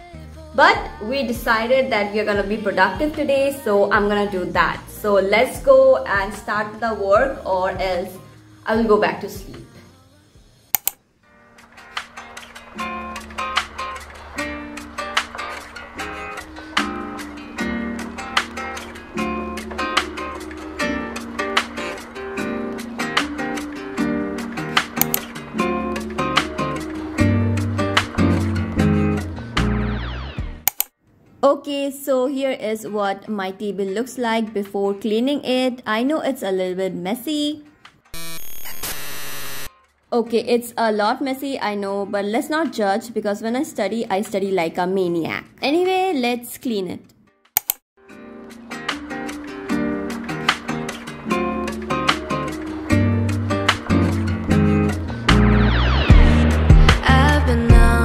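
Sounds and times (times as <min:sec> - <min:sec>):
acoustic guitar background music: 0:00.0 - 0:30.7, 0:48.0 - 0:58.0
sharp clicks: 0:10.8 - 0:11.0, 0:25.0 - 0:25.3, 0:30.7 - 0:30.9, 0:47.6 - 0:47.8
buzzing tone: 0:38.2 - 0:39.7, 0:55.3 - 0:58.0
static hiss: 0:38.2 - 0:39.7.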